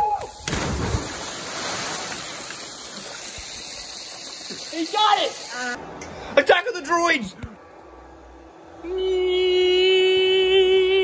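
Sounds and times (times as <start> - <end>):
water churning and spraying: 0.4 - 5.8.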